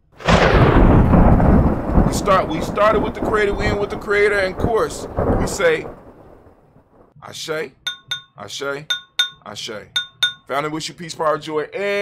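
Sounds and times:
loud deep rumbling: 0.2s - 5.4s.

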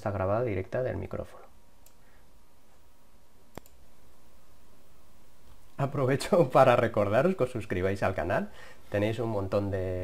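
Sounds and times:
faint steady hiss: 0.0s - 10.0s
computer mouse click: 3.5s - 3.8s.

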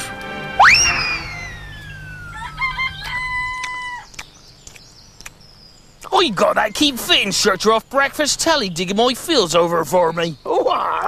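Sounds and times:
rooster crowing: 0.4s - 4.2s
whistling tone gliding down: 0.5s - 3.6s
low rumble: 0.6s - 4.2s.

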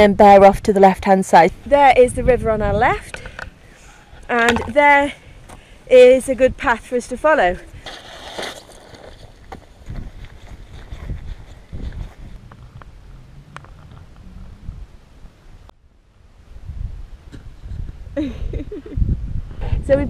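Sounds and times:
wind buffeting microphone: 1.4s - 8.0s, 8.9s - 15.7s, 16.4s - 20.0s.

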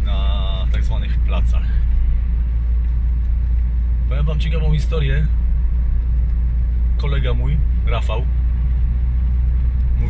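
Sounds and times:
car interior engine and road rumble: 0.0s - 10.0s.

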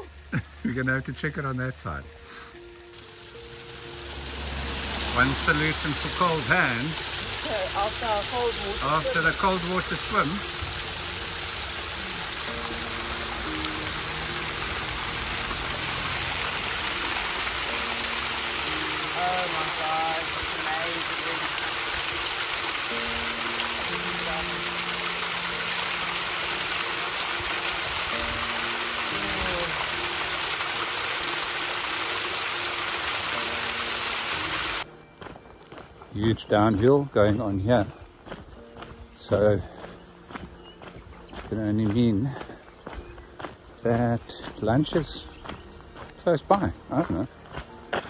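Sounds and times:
background music: 0.0s - 48.0s
water pouring down rock: 2.9s - 34.9s.

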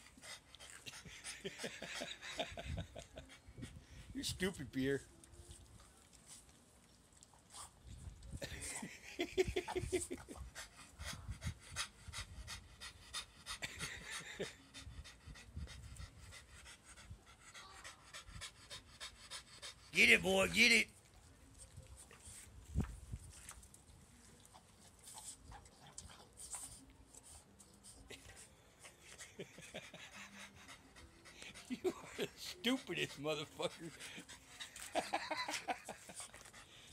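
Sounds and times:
dog panting: 0.0s - 4.8s, 9.4s - 20.9s, 24.4s - 36.9s.

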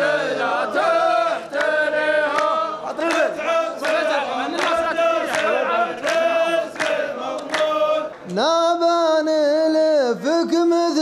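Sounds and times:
men chanting in unison: 0.0s - 11.0s
hand claps: 1.4s - 8.7s.

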